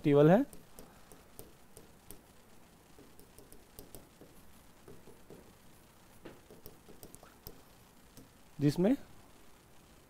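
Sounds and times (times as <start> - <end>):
stylus tapping on a screen: 0.4 - 5.6, 6.2 - 8.4.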